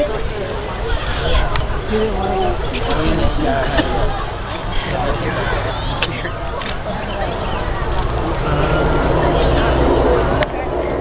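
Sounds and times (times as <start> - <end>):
jet engine rumble: 0.0 - 11.0.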